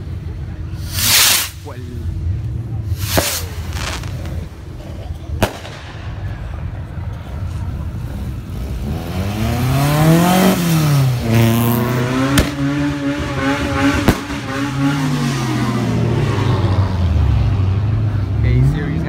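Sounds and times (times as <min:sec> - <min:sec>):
sharp cracks: 0:05.4 - 0:06.4
car engine revving: 0:07.9 - 0:19.0.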